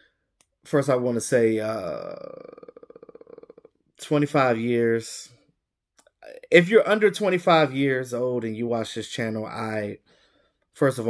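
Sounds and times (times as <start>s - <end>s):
man speaking: 0.6s - 5.4s, 6.2s - 10.0s, 10.8s - 11.0s.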